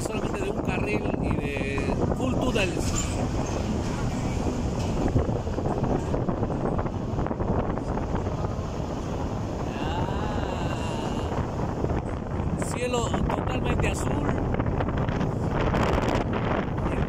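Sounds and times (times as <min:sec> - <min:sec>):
vehicle engine and road noise: 0:00.0 - 0:17.0
wind buffeting microphone: 0:00.0 - 0:17.0.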